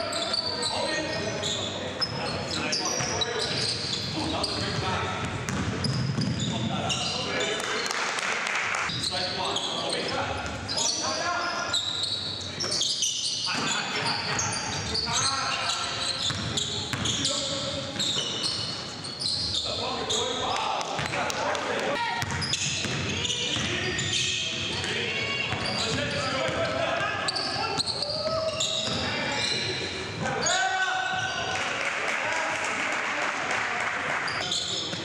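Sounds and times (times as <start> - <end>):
voices in a large gym: 0.0 - 35.0.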